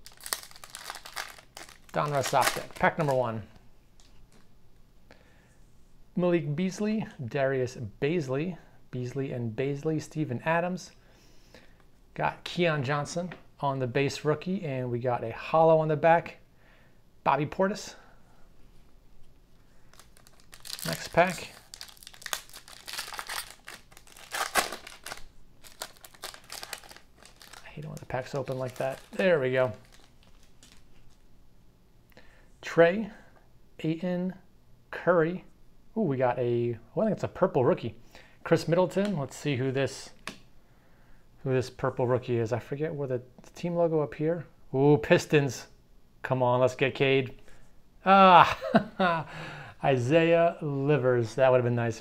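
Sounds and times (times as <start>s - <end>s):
card pack being torn open: 0.0s - 3.2s, 19.9s - 30.8s
foil wrapper crinkling: 0.0s - 3.3s, 19.9s - 31.2s.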